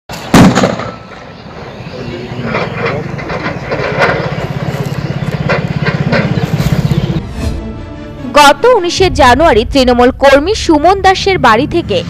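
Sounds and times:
low pulsing drone: 0:01.0 - 0:12.0
voices: 0:01.2 - 0:07.2, 0:08.3 - 0:12.0
bomb blast with rumbling echo: 0:08.8 - 0:11.5.

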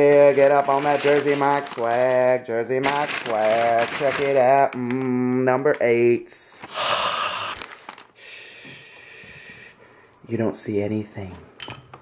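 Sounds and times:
man exhaling loudly: 0:06.7 - 0:09.8.

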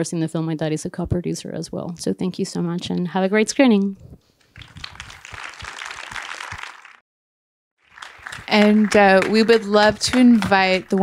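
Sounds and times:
audience applauding: 0:04.5 - 0:07.0, 0:07.8 - 0:11.0.

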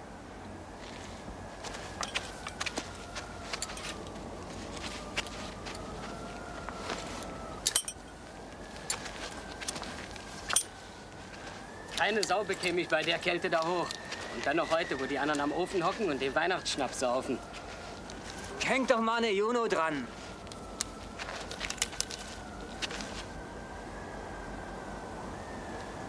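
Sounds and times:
faint wavering high tone: 0:01.6 - 0:23.3
tools clinking against wooden pole: 0:02.0 - 0:02.8, 0:03.5 - 0:04.2, 0:07.6 - 0:08.1, 0:10.4 - 0:10.8.

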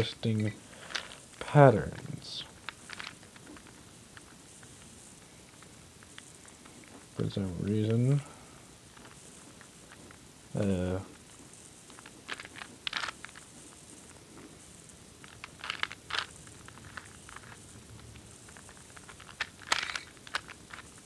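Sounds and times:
plastic puzzle clicking: 0:01.9 - 0:04.4, 0:11.9 - 0:13.5, 0:15.2 - 0:17.6, 0:18.5 - 0:21.0.

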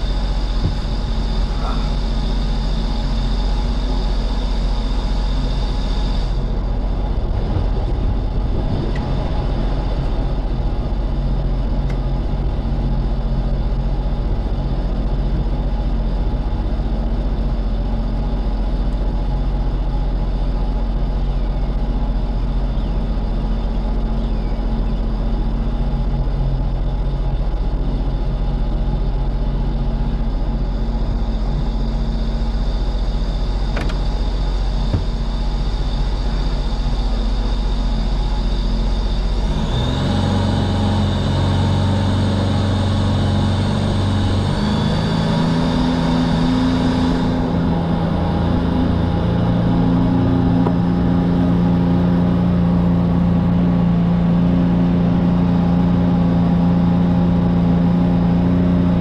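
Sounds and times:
jet boat engine: 0:00.0 - 0:59.0.

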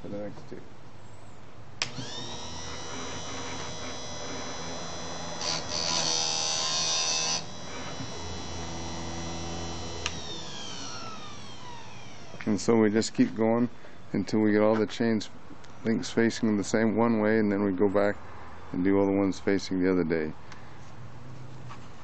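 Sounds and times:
grinder motor whining: 0:01.8 - 0:12.7
grinding wheel on metal: 0:01.9 - 0:12.6.

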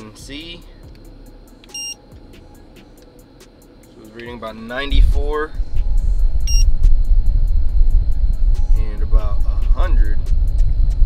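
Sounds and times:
air blowing from car vent: 0:00.0 - 0:11.0
short high electronic beep: 0:01.7 - 0:02.0, 0:06.5 - 0:06.7.

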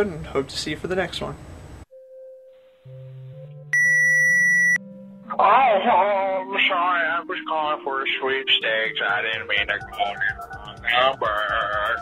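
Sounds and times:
high-pitched electronic beep: 0:03.7 - 0:04.9.

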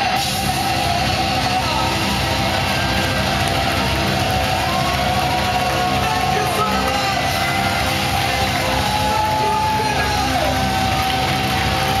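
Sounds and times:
power metal band playing: 0:00.0 - 0:12.0.

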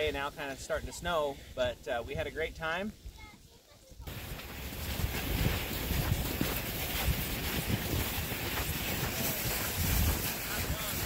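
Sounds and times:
wind buffeting microphone: 0:04.1 - 0:11.0.

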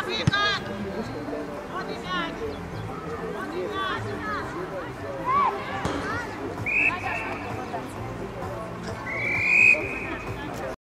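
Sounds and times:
background voices: 0:00.5 - 0:10.8
referee's whistle blast: 0:06.6 - 0:07.4, 0:09.1 - 0:10.2.

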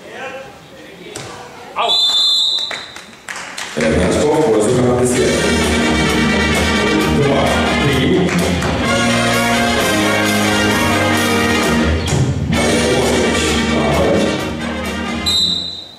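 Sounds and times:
referee's whistle: 0:01.8 - 0:03.1, 0:15.2 - 0:15.9
loud music: 0:04.8 - 0:15.6.

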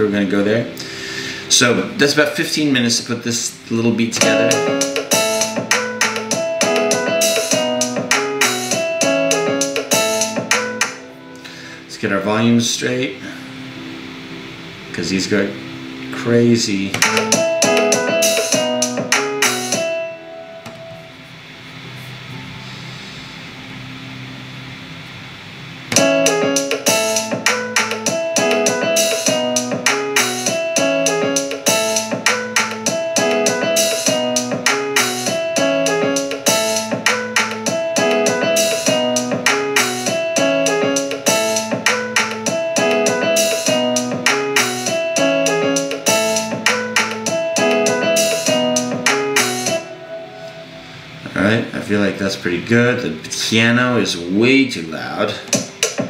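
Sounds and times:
piano riff: 0:00.0 - 0:52.2
programmed drum kit: 0:04.1 - 0:11.0, 0:16.9 - 0:20.0, 0:25.9 - 0:49.8, 0:55.5 - 0:56.0.

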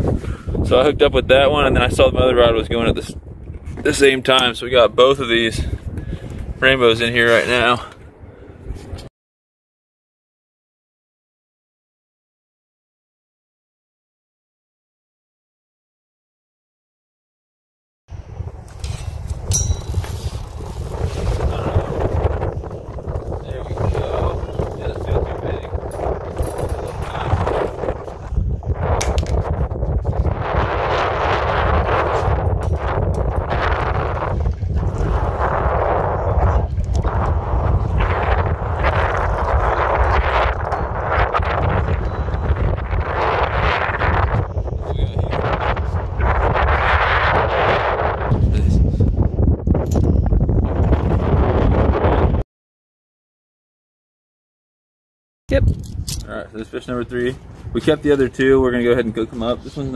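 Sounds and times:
strong wind buffeting microphone: 0:00.0 - 0:09.1, 0:18.1 - 0:52.4, 0:55.5 - 0:59.9.

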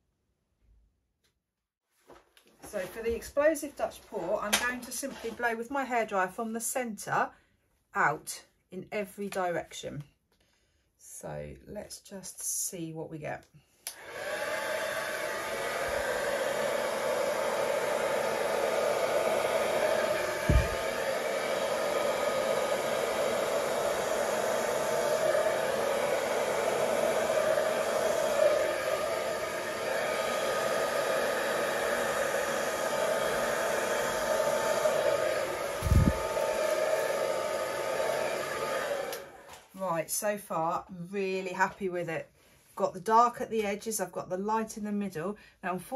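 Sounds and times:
hair dryer running: 0:04.2 - 0:05.4, 0:13.9 - 0:39.8
low thumps: 0:20.4 - 0:20.9.

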